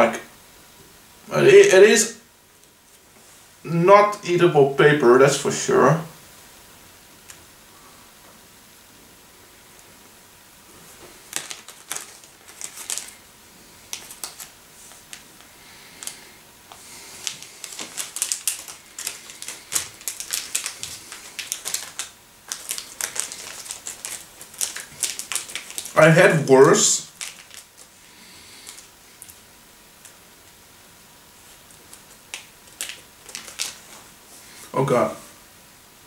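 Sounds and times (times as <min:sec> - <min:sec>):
crunchy chewing: 0:11.3 - 0:26.0.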